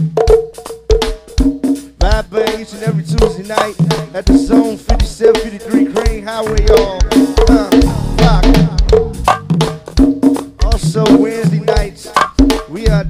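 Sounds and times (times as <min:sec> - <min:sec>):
conga hits: 0:00.0 - 0:13.0
drum kit: 0:00.0 - 0:13.0.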